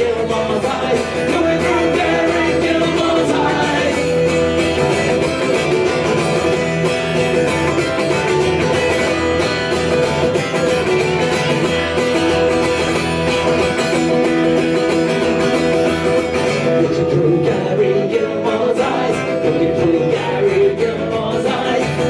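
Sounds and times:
acoustic guitar strummed hard: 0.0s - 22.0s.

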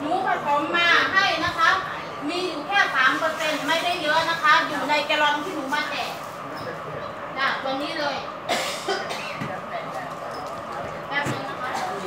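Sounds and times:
woman talking: 0.0s - 6.2s, 7.4s - 8.4s, 9.0s - 12.0s
person coughing: 8.5s - 9.4s.

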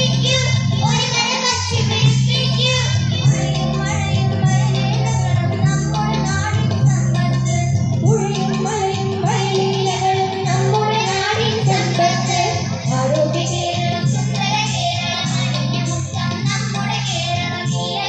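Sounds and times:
instrumental accompaniment: 0.0s - 18.0s.

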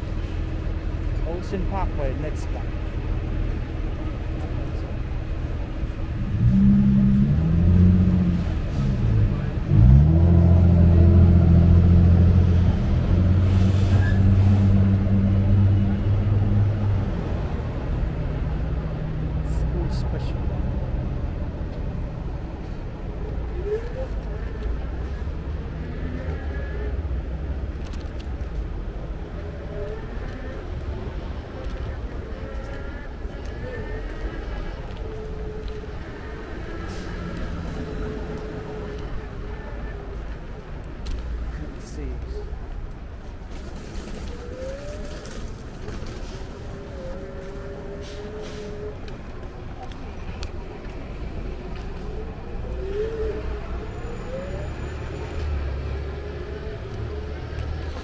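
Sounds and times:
traffic rumble: 0.0s - 58.0s.

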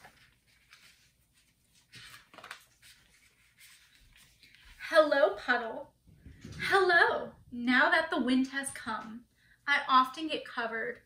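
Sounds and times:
paper pages rustling: 0.0s - 4.8s.

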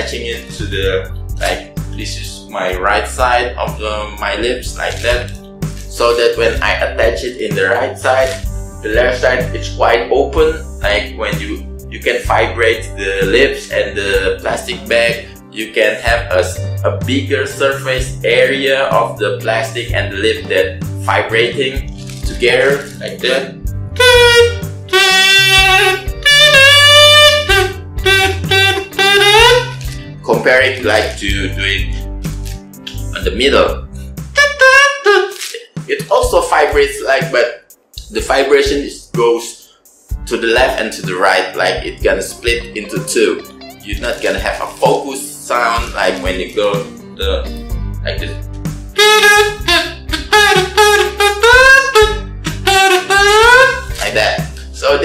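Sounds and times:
comb and plastic bag buzzing tune: 4.7s - 6.2s, 8.0s - 9.1s, 21.8s - 23.4s, 24.0s - 32.8s, 34.4s - 35.7s, 43.4s - 45.0s, 49.0s - 54.6s.

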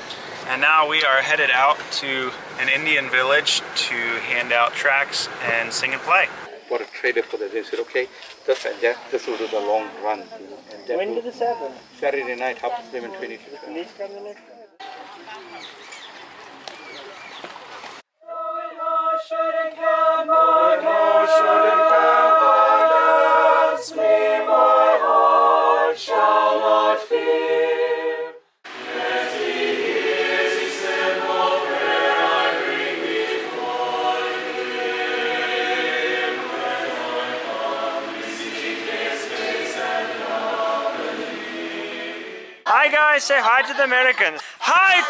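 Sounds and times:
choir singing a hymn unaccompanied: 18.2s - 42.6s.

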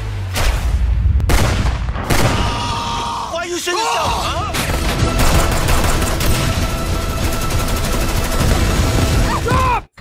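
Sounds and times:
dense film soundtrack: 0.0s - 10.0s
rapid gunfire: 4.7s - 9.3s.

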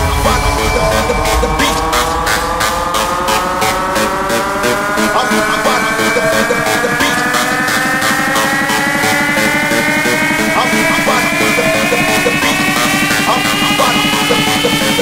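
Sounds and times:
deep rocket engine rumble: 0.0s - 15.0s
fast electronic dance music: 0.0s - 15.0s.

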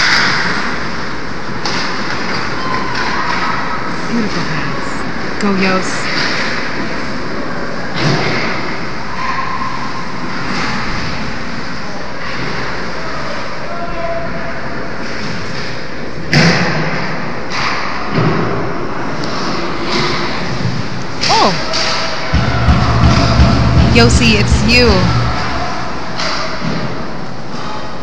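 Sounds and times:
rink and crowd noise: 0.0s - 28.0s.

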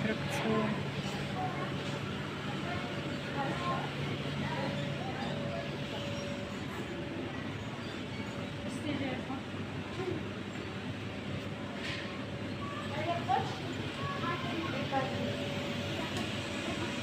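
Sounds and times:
faint indistinct voices talking: 0.0s - 17.0s
steady background hum: 0.0s - 17.0s.

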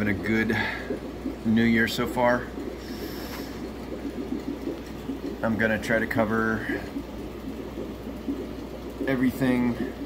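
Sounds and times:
aquarium filter running water: 0.0s - 10.0s.

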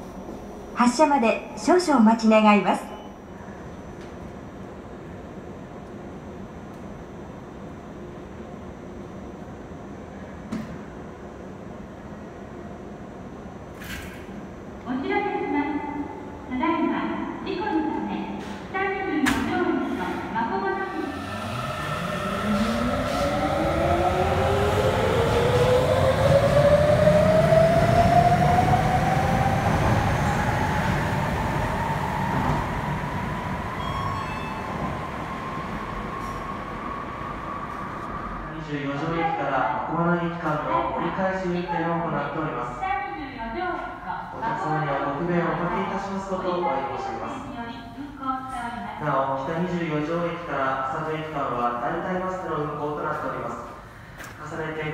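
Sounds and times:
train running noise: 18.3s - 38.9s
pitched signal tones: 33.6s - 36.9s.

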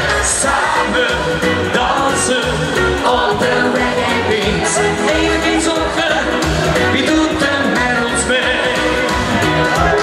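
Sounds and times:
live reggae pop band: 0.0s - 10.0s
man singing into a microphone: 0.0s - 10.0s.

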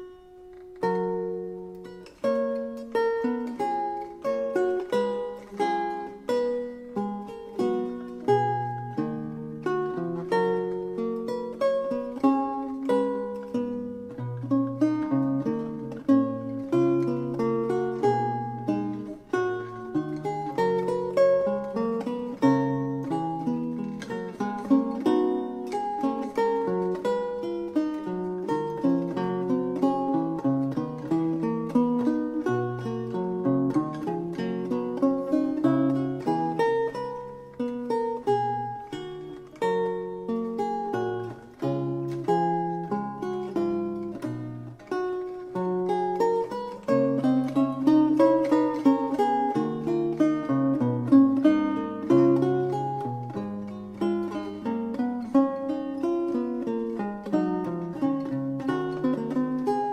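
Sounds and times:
solo lute music: 0.0s - 59.9s.

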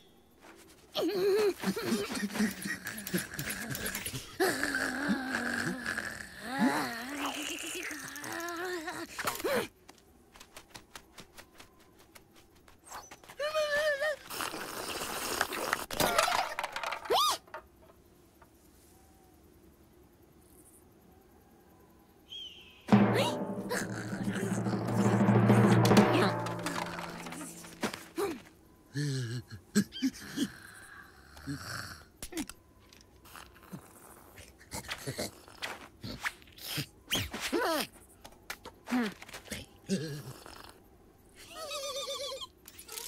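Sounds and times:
cartoon hyena cry: 22.9s - 27.6s
cartoon quick footsteps: 23.1s - 28.5s.

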